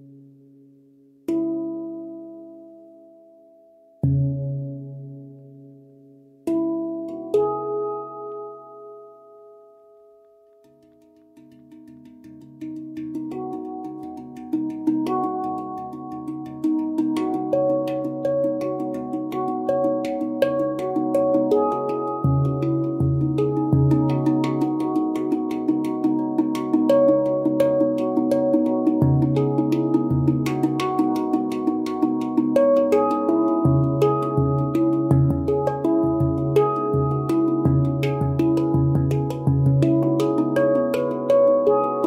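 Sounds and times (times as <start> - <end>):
handpan notes ringing: 1.3 - 42.0
deep low handpan note: 12.0 - 42.0.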